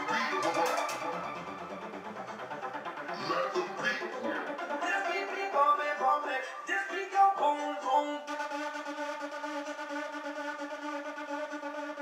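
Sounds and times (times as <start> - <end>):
music through speaker held note: 0.0 - 2.1.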